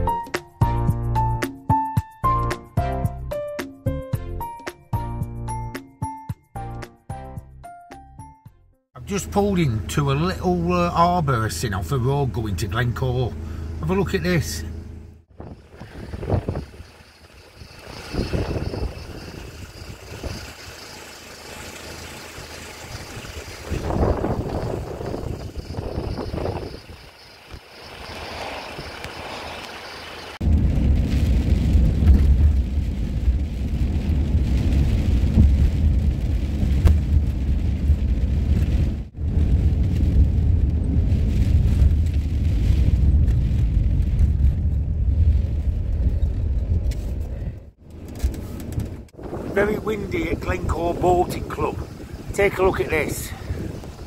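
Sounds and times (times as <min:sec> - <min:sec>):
van driving on wet road: 0:09.0 - 0:54.0
wind gusting over microphone: 0:15.3 - 0:54.0.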